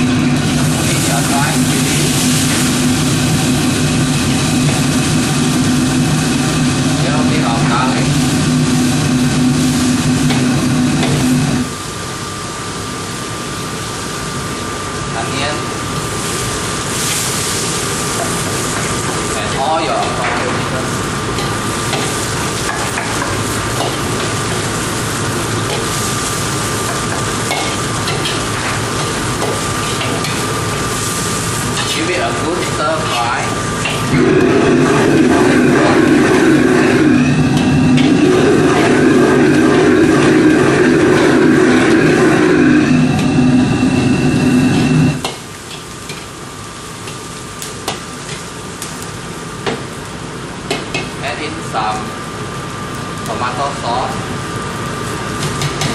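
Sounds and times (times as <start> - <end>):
steady hum with held tones: 0.0 - 16.8, 17.4 - 55.9
food sizzling in a wok: 0.0 - 55.9.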